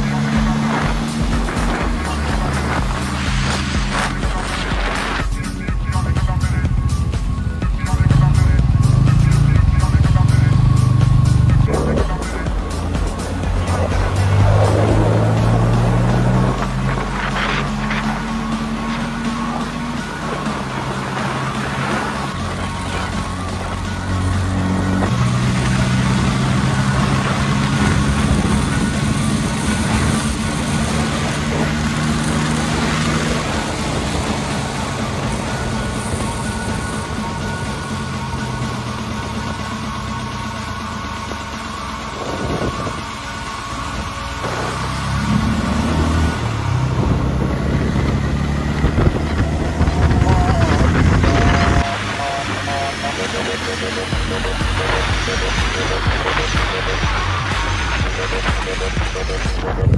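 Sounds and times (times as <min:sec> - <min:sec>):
wind rush on microphone: 0:00.0 - 0:05.4, 0:42.2 - 0:43.1, 0:46.2 - 0:51.8, 0:54.8 - 0:59.9
motorcycle engine: 0:00.0 - 0:59.9.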